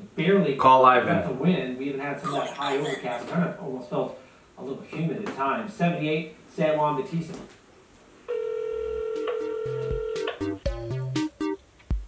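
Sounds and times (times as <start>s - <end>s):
telephone ringback tone: 8.3s - 10.3s
music beat with bass and kick drum: 9.8s - 12.0s.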